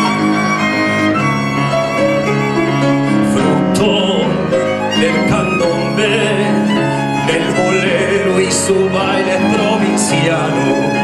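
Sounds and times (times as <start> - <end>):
tango ensemble: 0.0 - 11.0
violin playing a melody: 0.0 - 11.0.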